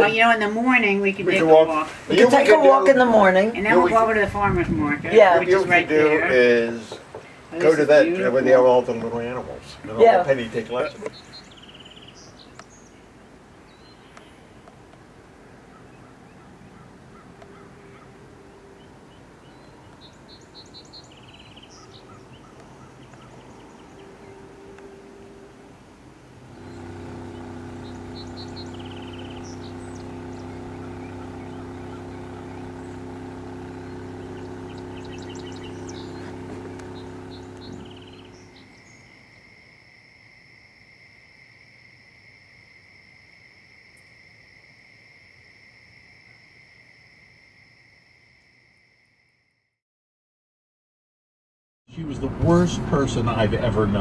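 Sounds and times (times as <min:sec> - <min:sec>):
birds chirping: 0:00.0 - 0:39.5
faint open-air ambience: 0:00.0 - 0:49.6
insects trilling: 0:16.1 - 0:24.7, 0:26.4 - 0:49.6
motorboat engine drone: 0:16.8 - 0:39.3, 0:52.1 - 0:54.0.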